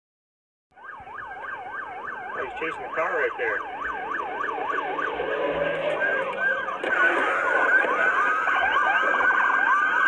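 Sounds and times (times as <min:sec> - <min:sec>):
police siren yelping: 0:00.8 - 0:10.0.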